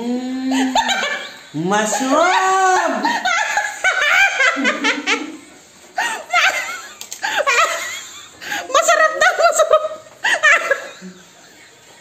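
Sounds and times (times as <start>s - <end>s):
woman laughing: 0.4s - 11.4s.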